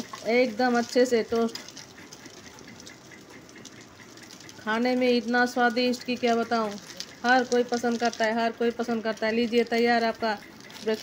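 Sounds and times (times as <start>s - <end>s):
bread sizzling in a pan: 0.0s - 11.0s.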